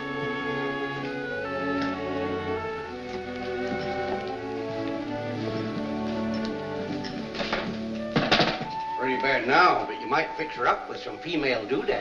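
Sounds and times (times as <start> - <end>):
orchestral music with strings: 0.0 - 12.0
knocks: 7.4 - 8.8.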